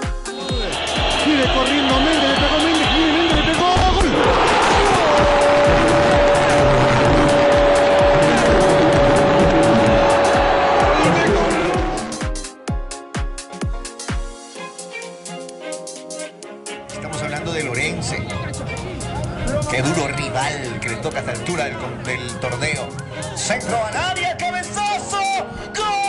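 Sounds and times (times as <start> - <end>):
dance music beat: 0.0 - 16.9
stadium crowd roar: 0.3 - 12.3.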